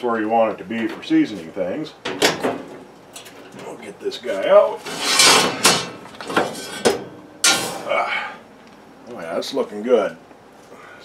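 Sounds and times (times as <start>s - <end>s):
skillet scraping on wire rack: 4.7s - 7.9s.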